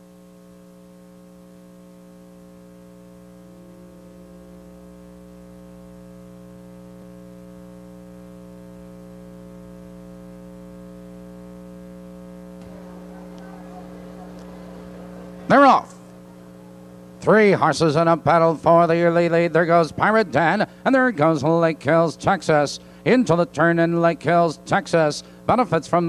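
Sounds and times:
electrical mains hum: 0:00.0 - 0:26.0.

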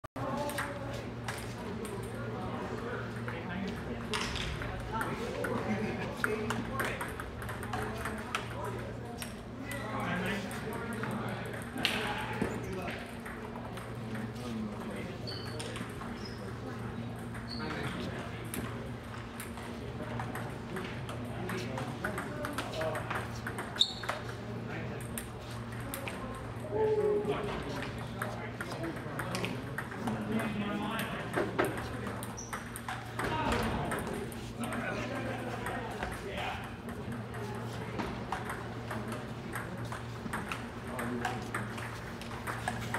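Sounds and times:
table tennis balls clicking: 0:06.2 - 0:08.6, 0:19.4 - 0:24.4, 0:28.2 - 0:42.9.

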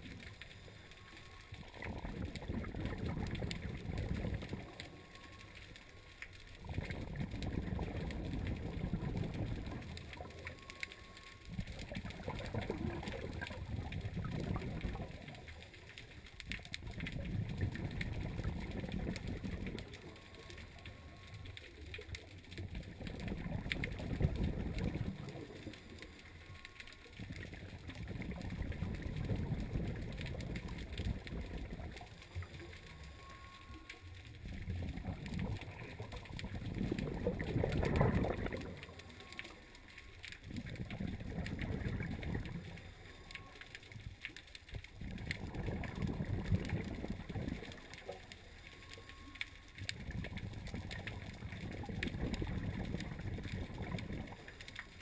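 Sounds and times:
rumble of exhaled bubbles: 0:00.0 - 0:55.0.

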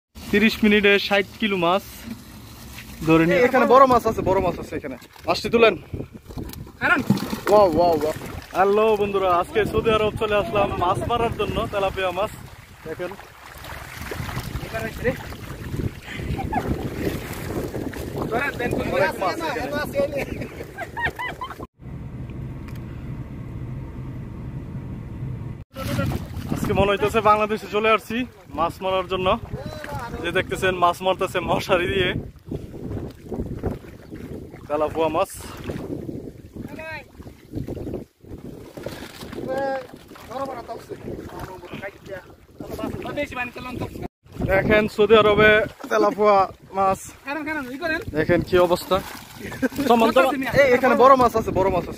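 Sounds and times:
shallow water sloshing and splashing: 0:00.1 - 0:21.7, 0:25.7 - 0:51.9
wind buffeting microphone: 0:03.8 - 0:21.7, 0:25.8 - 0:27.7, 0:29.0 - 0:45.8, 0:47.9 - 0:51.9.

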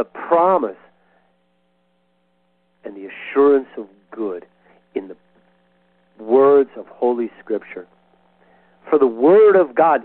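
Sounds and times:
faint electrical hum: 0:00.0 - 0:10.0
man speaking: 0:02.8 - 0:05.2, 0:06.2 - 0:07.9, 0:08.8 - 0:10.0.

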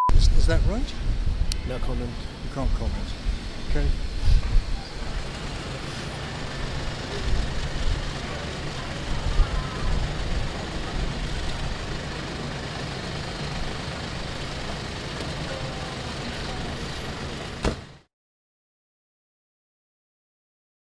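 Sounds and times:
street traffic: 0:00.4 - 0:18.1
vehicle engine running: 0:00.9 - 0:18.1.

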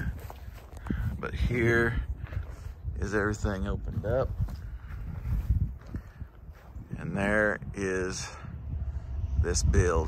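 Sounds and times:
footsteps on dry grass: 0:00.0 - 0:07.7
wind rumble: 0:00.0 - 0:10.0.

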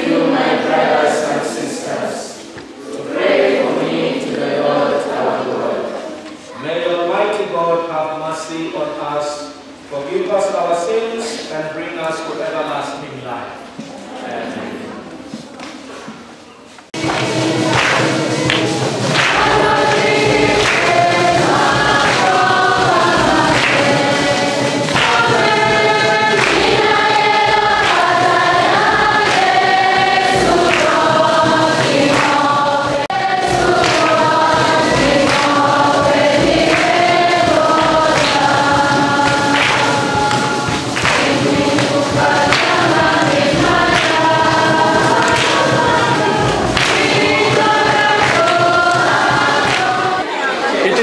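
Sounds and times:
children's choir singing a hymn: 0:00.0 - 0:51.0
hand claps: 0:16.9 - 0:50.2.

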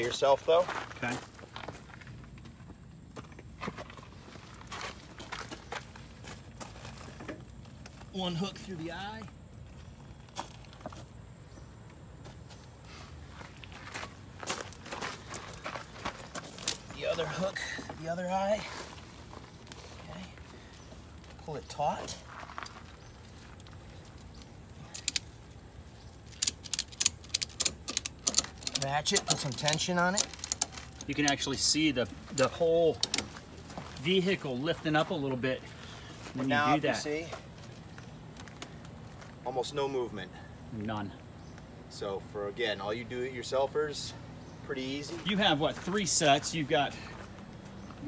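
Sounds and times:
footsteps crunching on gravel: 0:00.0 - 0:26.3, 0:28.8 - 0:39.7, 0:45.0 - 0:48.0
ratchet buckle clicking: 0:26.3 - 0:30.7.

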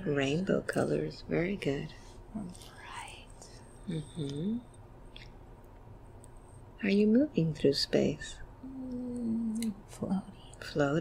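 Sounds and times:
person saying mm-hmm: 0:03.9 - 0:04.6, 0:08.6 - 0:09.8
faint whispered speech: 0:08.6 - 0:10.4.

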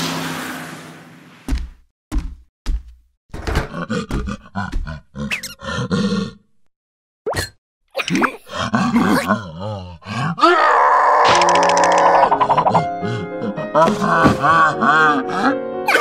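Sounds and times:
cartoon creature grunts and groans: 0:03.6 - 0:06.6, 0:08.0 - 0:16.0
wobbling wavering cries: 0:10.6 - 0:12.8
background music: 0:12.2 - 0:16.0.

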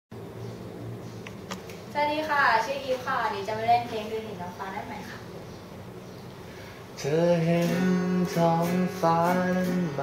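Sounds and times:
low buzzing hum: 0:00.1 - 0:10.0.

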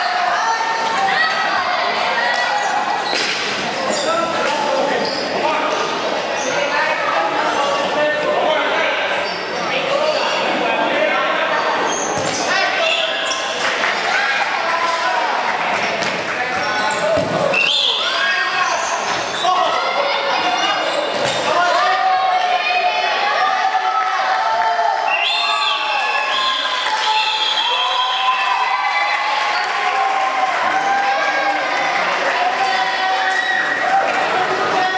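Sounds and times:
people shouting in a hall: 0:00.0 - 0:05.7, 0:06.4 - 0:15.6, 0:16.4 - 0:34.9.

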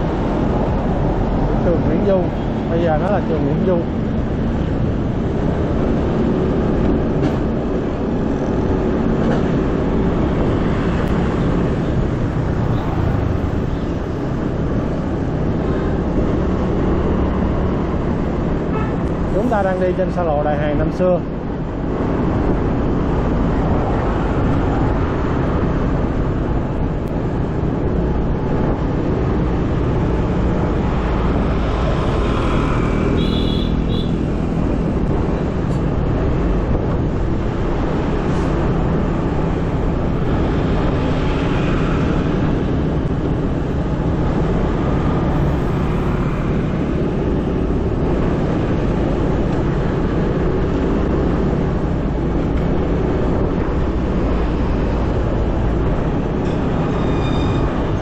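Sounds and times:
motor scooter engine and road noise: 0:00.0 - 0:58.0
vehicles passing close by: 0:00.0 - 0:58.0.

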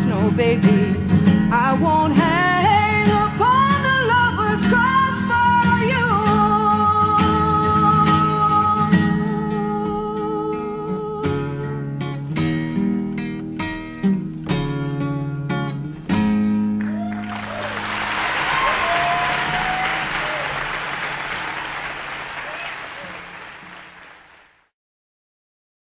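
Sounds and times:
acoustic guitar strumming: 0:00.0 - 0:16.8, 0:17.7 - 0:22.4
audience cheering: 0:16.8 - 0:24.6
audience applauding: 0:16.8 - 0:24.7.

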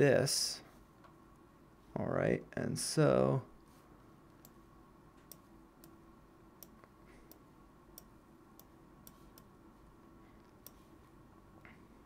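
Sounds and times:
faint room hum: 0:00.0 - 0:12.0
computer mouse clicks: 0:08.0 - 0:09.5, 0:10.4 - 0:10.9.

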